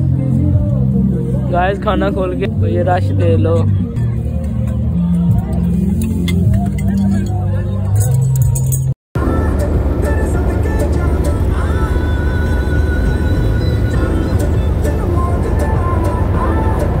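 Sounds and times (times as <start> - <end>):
car engine rumble: 0.0 - 17.0
faint music: 0.0 - 17.0.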